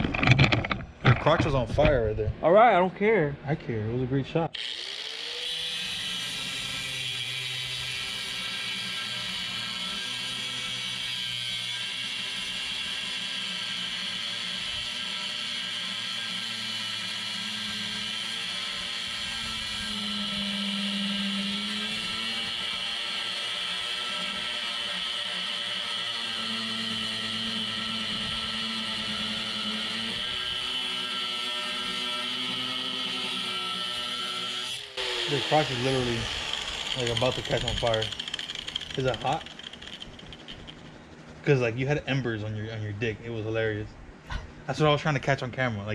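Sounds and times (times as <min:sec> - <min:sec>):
angle grinder cutting metal: 0:04.5 - 0:41.0.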